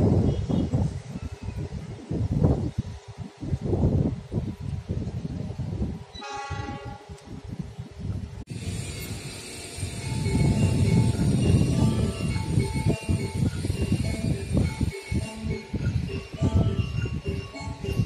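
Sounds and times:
wind buffeting microphone: 0.0 - 18.0
train horn: 6.2 - 7.1
chime melody over loudspeakers: 10.0 - 18.0.

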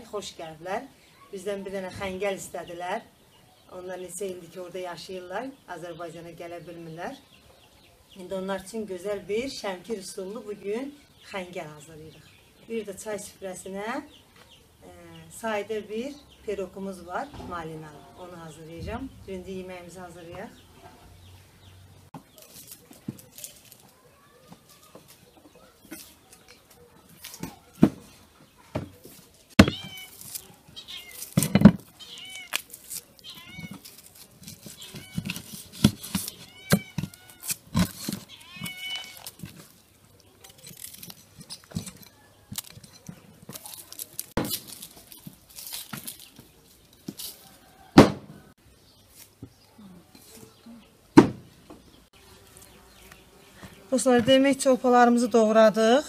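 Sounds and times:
cleaver chopping on wooden board: 29.6 - 29.9
cat meowing: 30.8 - 31.2, 32.0 - 32.5, 33.2 - 33.8, 38.3 - 39.2.

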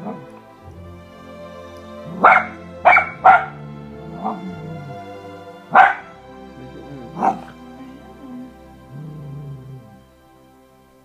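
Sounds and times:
puppy barking: 2.2 - 5.0, 5.7 - 6.1, 6.9 - 7.6
puppy yipping: 5.8 - 6.1.

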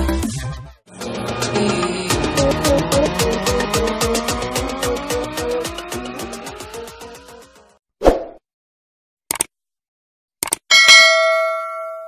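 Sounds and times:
bright bell ding: 10.7 - 12.0.

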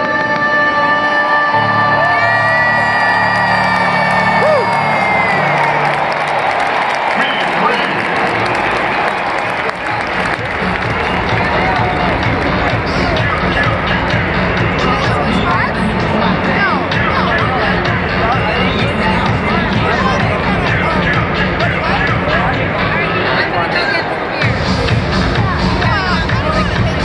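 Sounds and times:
anthem sung over sound system: 0.0 - 4.4, 10.8 - 27.0
stadium crowd cheering: 1.5 - 27.0.

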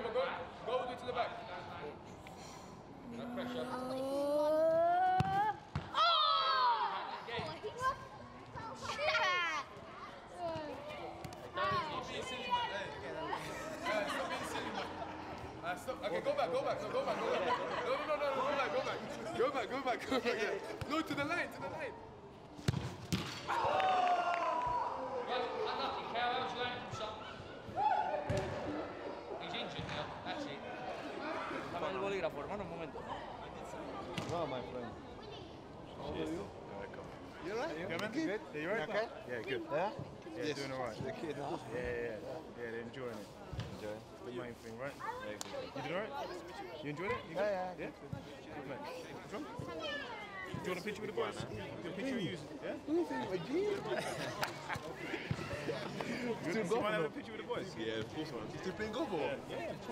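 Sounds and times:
chatter of children and adults: 0.0 - 23.7, 24.5 - 59.9.

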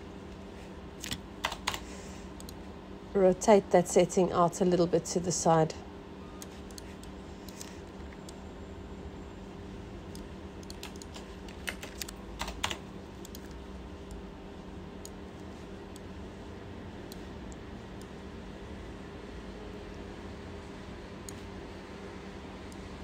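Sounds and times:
low electrical hum: 0.0 - 23.0
computer keyboard and mouse clicks: 1.0 - 1.8, 10.1 - 14.2.

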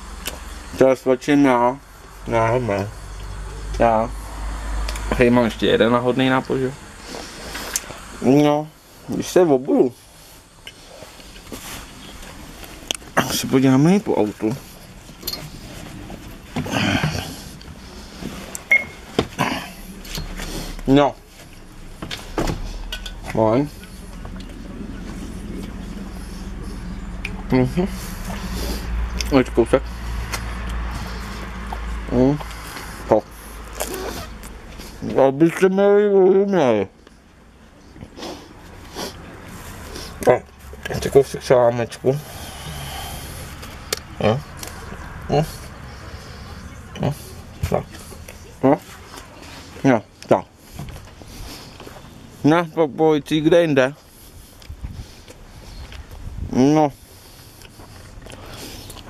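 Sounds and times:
steady low hum: 0.0 - 35.4
rustle: 6.2 - 35.6
man murmuring with food: 16.6 - 17.6, 19.3 - 21.2, 24.5 - 29.9
short vocal sound: 19.3 - 21.2.

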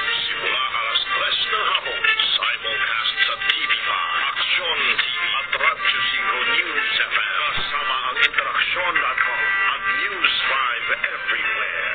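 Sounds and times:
person speaking over music: 0.0 - 11.9
station identification music: 3.5 - 11.9.

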